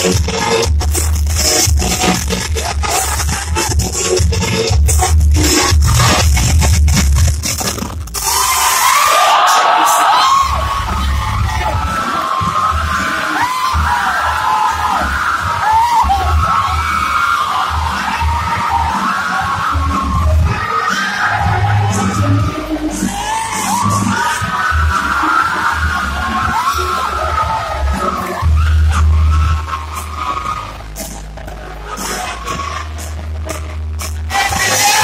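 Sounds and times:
crowd yelling and cheering: 0:00.0 - 0:35.0
dance music with pulsing bass: 0:00.0 - 0:35.0.

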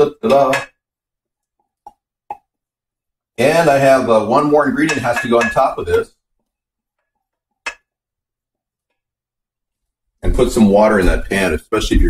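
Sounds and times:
metal pot clinking on glass dish: 0:04.8 - 0:06.0.

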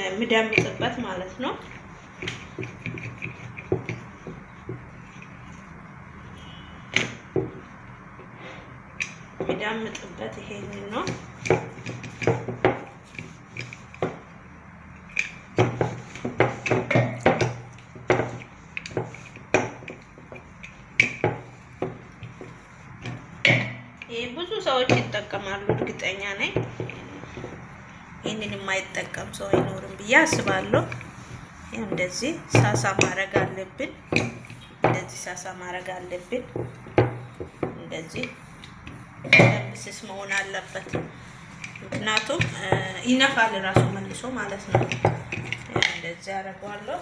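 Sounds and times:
rolling pin rolling dough: 0:00.0 - 0:47.0.

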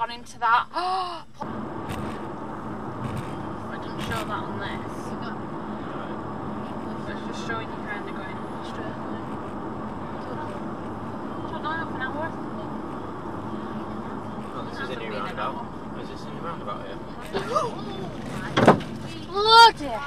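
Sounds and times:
car road and engine noise: 0:00.0 - 0:20.0
faint voices murmuring: 0:03.0 - 0:19.4.

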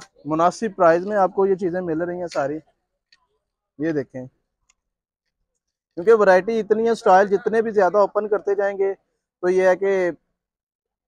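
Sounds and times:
faint clicks: 0:04.6 - 0:06.0.

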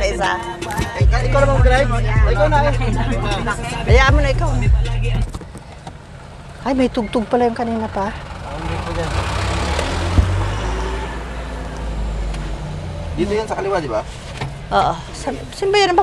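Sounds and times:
car rumble from inside cabin: 0:00.0 - 0:16.0.

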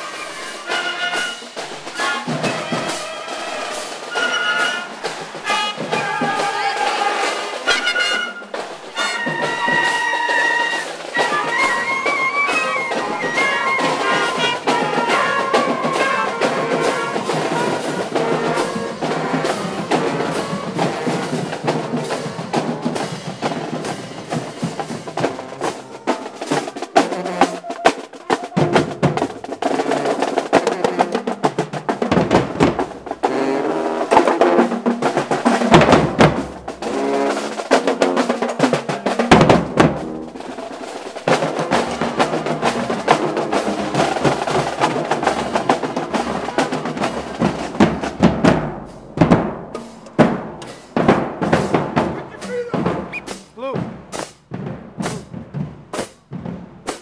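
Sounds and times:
brass horns playing a tune: 0:00.0 - 0:53.6
snare drums: 0:00.0 - 0:57.0.

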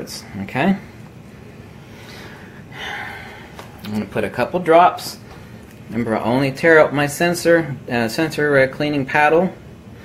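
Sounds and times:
low room noise: 0:00.0 - 0:10.0
man inhaling noisily: 0:01.8 - 0:03.6.

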